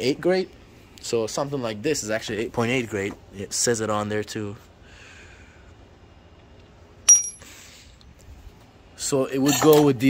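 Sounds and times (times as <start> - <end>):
metal bolt clinking on concrete: 7.1 - 7.6.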